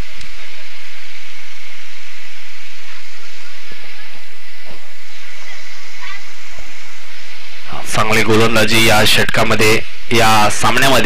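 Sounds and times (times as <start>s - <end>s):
loud hiss: 0.0s - 11.0s
faint indistinct voices: 2.6s - 8.6s.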